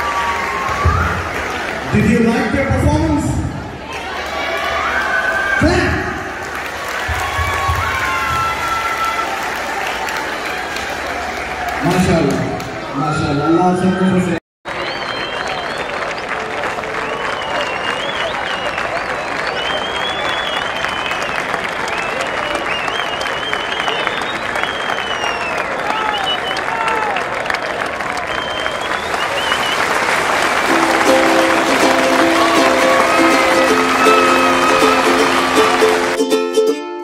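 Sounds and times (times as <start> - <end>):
audience applause: 0.0 - 13.0, 14.7 - 36.6
cheering voices: 0.0 - 36.7
plucked-string tune: 30.7 - 37.0.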